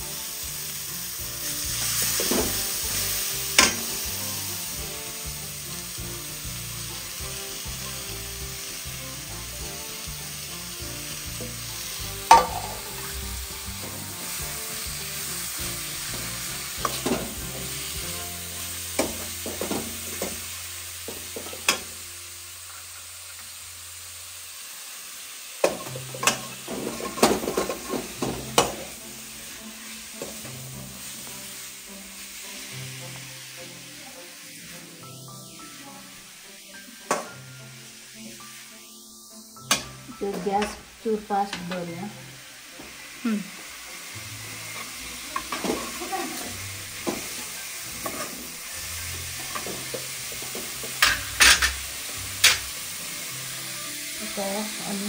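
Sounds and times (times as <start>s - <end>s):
food sizzling in hot oil: 0.0s - 55.0s
metal ladle striking pan: 3.5s - 4.0s, 12.2s - 13.1s, 18.9s - 20.4s, 21.1s - 22.0s, 25.6s - 29.0s, 39.6s - 40.8s, 49.4s - 52.7s.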